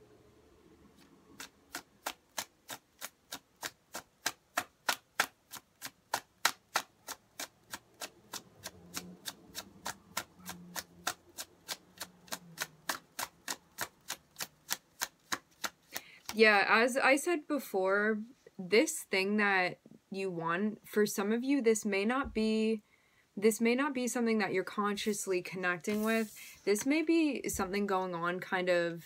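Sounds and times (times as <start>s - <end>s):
cards being shuffled: 1.0s - 16.5s, 25.8s - 26.6s.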